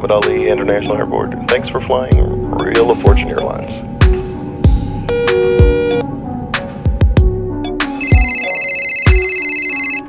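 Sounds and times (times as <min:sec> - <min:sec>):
background music with heavy beats: 0:04.0 - 0:06.0, 0:06.6 - 0:08.3
electronic telephone ringtone: 0:05.1 - 0:06.0, 0:08.0 - 0:10.0.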